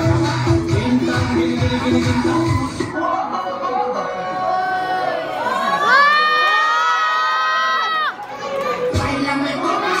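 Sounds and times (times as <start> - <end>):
children cheering and screaming: 2.3 - 10.0.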